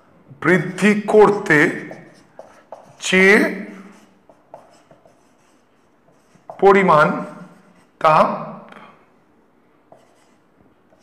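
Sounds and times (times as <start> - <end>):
man speaking drawn-out syllable: 0.4 - 2.2, 3.0 - 4.0, 6.5 - 8.7
marker writing on whiteboard: 0.8 - 8.0, 9.9 - 11.0.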